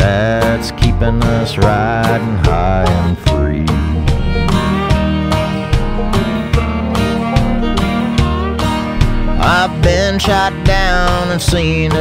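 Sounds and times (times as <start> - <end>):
fiddle: 0.0 - 11.6
strummed acoustic guitar: 0.0 - 12.0
steady beat: 0.8 - 11.5.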